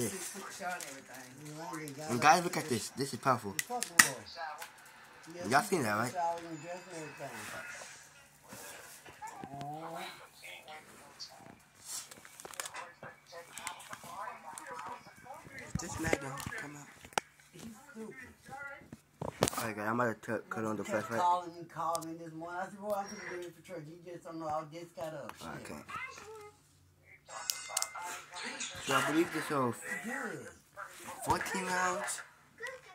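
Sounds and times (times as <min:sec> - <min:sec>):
faint indistinct voices: 0:00.0 - 0:19.8.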